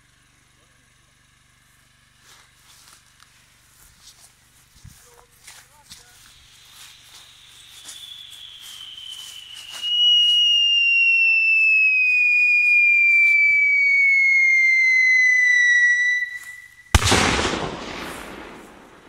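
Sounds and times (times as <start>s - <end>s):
firework whistle falling in pitch: 6.2s - 19.0s
sharp bang: 16.9s - 19.0s.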